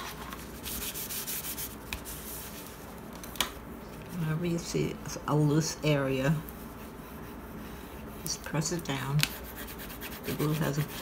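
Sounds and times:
hand rubbing over paper: 0.0 - 2.9, 6.2 - 11.0.

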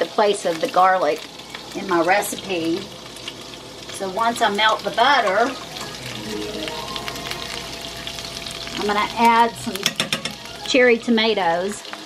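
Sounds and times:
butter sizzling in frying pan: 0.0 - 12.0
steady held tones: 1.4 - 11.2.

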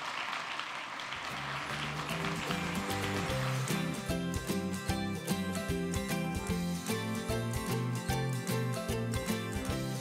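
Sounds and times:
audience applauding: 0.0 - 4.8
music playing: 1.3 - 10.0.

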